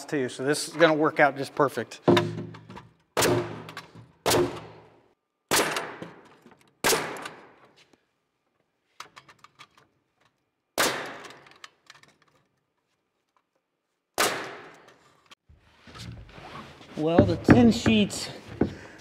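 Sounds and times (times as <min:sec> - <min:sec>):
nail gun shots into wood: 0:03.2 - 0:04.9, 0:05.5 - 0:07.6, 0:10.8 - 0:11.7, 0:14.2 - 0:15.0.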